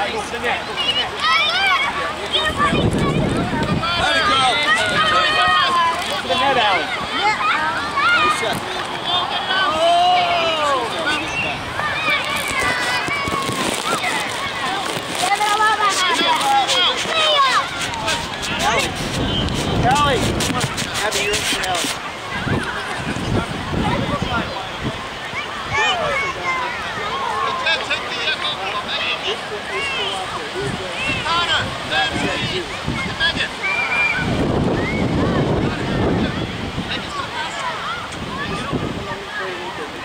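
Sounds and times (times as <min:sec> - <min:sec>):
children and spectators shouting: 0:00.7 - 0:19.5, 0:25.1 - 0:27.8, 0:28.6 - 0:40.0
wind buffeting microphone: 0:02.4 - 0:08.8, 0:10.8 - 0:26.4, 0:30.5 - 0:39.3.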